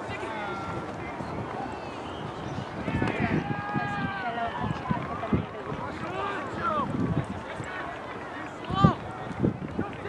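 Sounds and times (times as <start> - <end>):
voices shouting and calling out: 0.0 - 10.0.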